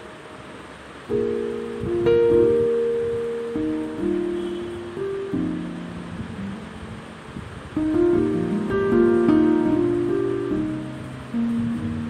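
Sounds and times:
instrumental background music: 7.8s - 12.0s.

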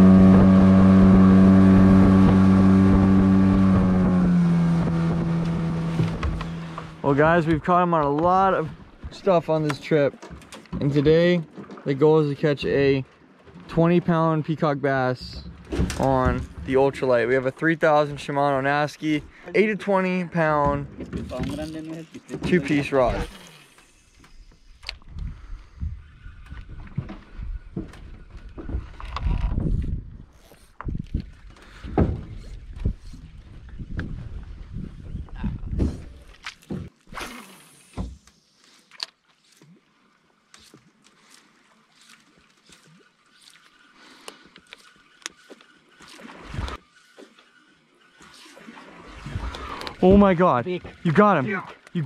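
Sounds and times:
low rumble: 0.0s - 9.2s
water lapping against boat hull: 0.0s - 52.0s.

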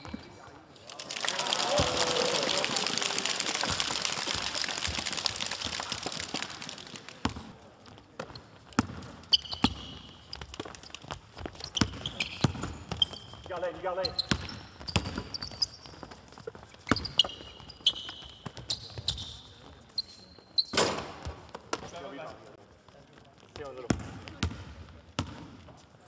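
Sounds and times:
sneaker squeaks: 0.0s - 0.5s, 8.2s - 21.9s
spectators cheering: 0.9s - 7.0s.

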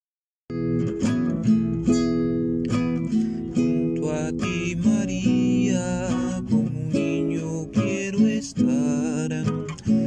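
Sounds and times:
acoustic guitar strumming chords: 0.5s - 10.0s.

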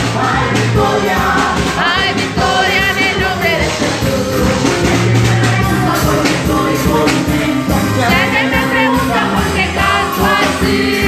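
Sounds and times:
band and singers through pa: 0.0s - 11.0s.

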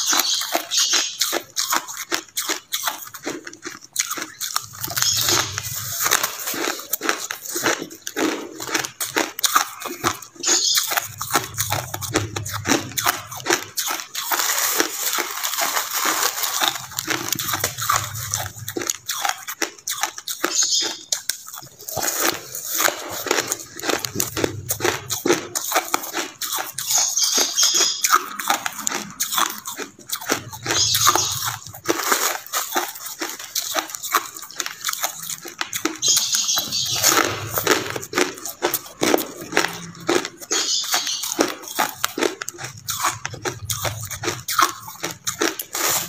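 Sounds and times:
ice being chewed: 0.0s - 46.0s.

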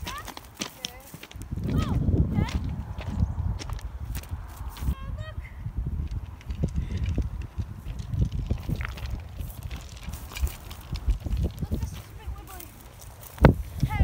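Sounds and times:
footsteps in long grass: 0.0s - 5.0s, 6.3s - 14.0s
wind rumbling on microphone: 0.0s - 14.0s.

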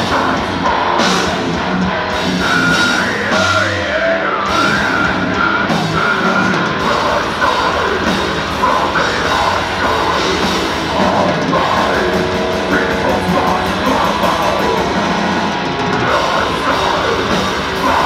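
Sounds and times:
bass guitar: 0.0s - 18.0s
distorted guitars: 0.0s - 18.0s
drums: 0.0s - 18.0s
harsh growled vocals: 0.0s - 18.0s.

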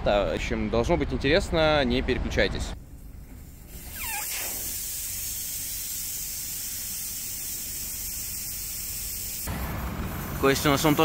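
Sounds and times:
air hissing from tyre valve: 2.8s - 11.0s
falling squeak: 3.8s - 4.7s.

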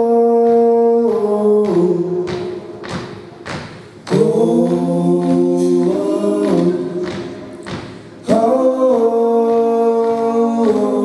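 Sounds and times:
male voices singing harmony: 4.1s - 7.3s, 8.2s - 11.0s.

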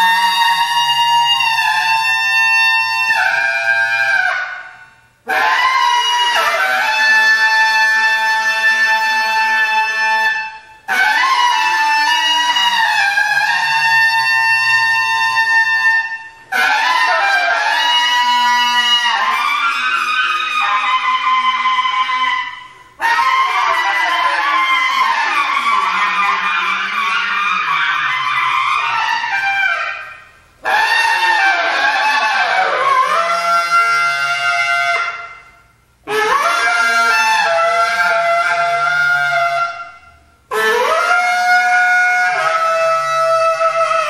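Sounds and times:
bass clarinet long held notes: 0.0s - 35.5s, 36.1s - 44.0s.

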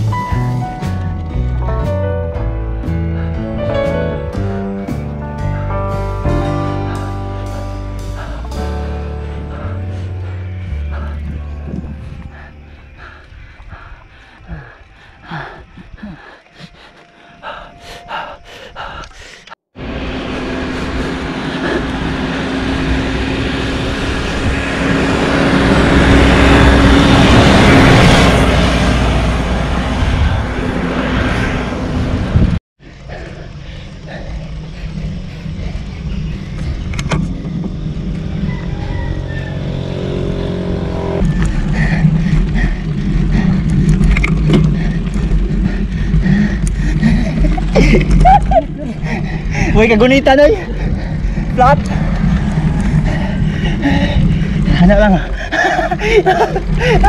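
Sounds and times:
low rumble: 0.0s - 57.0s
bike tyres on concrete: 41.2s - 57.0s.

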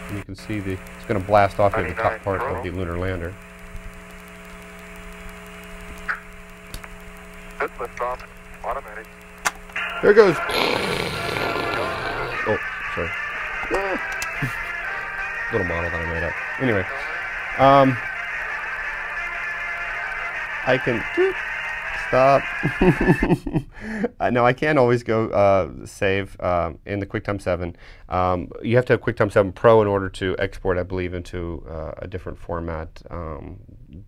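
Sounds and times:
electrical hum with hiss: 0.0s - 29.3s
click: 3.6s - 8.3s
muffled soundtrack music: 12.0s - 22.2s.

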